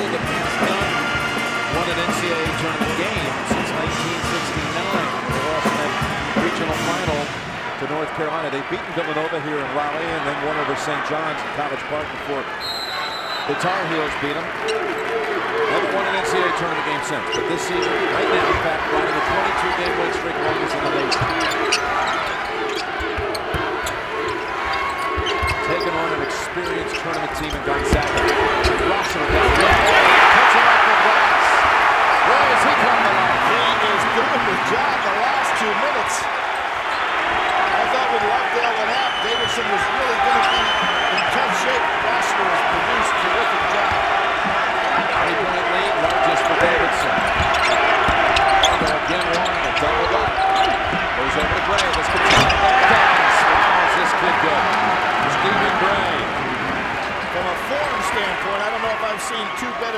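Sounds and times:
crowd cheering: 0.0s - 59.9s
crowd hum: 12.6s - 59.5s
basketball dribbling: 17.8s - 30.0s
sneaker squeaks: 20.7s - 30.1s, 40.2s - 41.4s, 47.1s - 52.9s.

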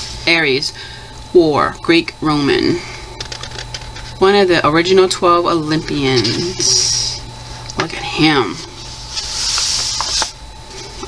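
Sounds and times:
hand rubbing paper pages: 8.7s - 11.0s.

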